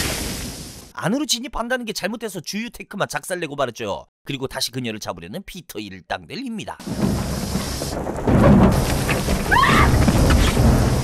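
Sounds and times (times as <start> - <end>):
deep rumble: 6.8 - 11.0.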